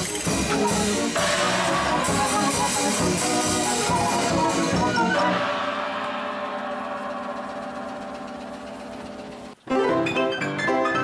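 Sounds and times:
brisk photoplayer tune: 0:00.0 - 0:10.2.

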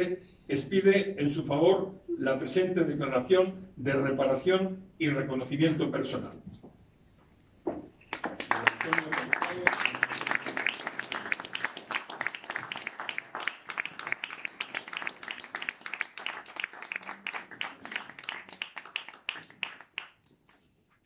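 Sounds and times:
audience applauding: 0:08.1 - 0:20.2.

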